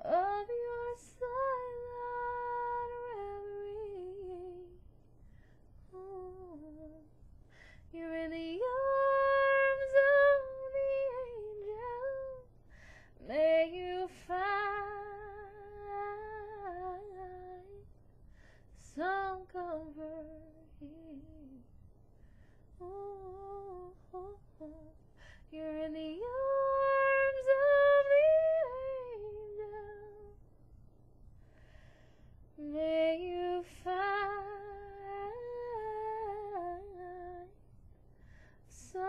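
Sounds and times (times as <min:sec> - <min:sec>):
woman singing a cappella: 0:00.0 - 0:04.8, 0:05.8 - 0:07.1, 0:07.8 - 0:17.9, 0:18.8 - 0:21.6, 0:22.8 - 0:30.4, 0:32.6 - 0:37.6, 0:38.6 - 0:39.0.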